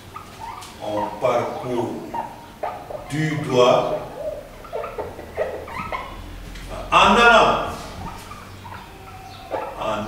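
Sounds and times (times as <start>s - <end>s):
marker squeaking on whiteboard: 4.2s - 6.2s.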